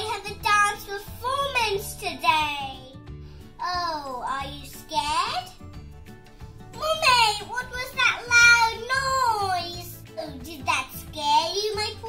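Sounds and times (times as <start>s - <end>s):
girl speaking in sing-song voice: 0.0s - 3.0s, 3.6s - 5.6s, 6.8s - 12.0s.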